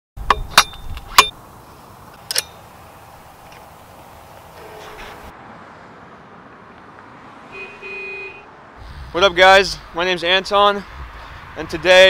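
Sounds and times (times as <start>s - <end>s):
low street noise: 0.2s - 12.0s
car horn toots: 7.5s - 8.5s.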